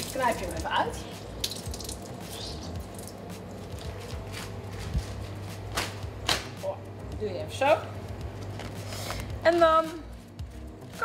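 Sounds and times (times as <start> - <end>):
water drips: 0.0 - 4.2
steady low hum: 0.0 - 11.0
wet paper being squeezed: 1.4 - 4.6.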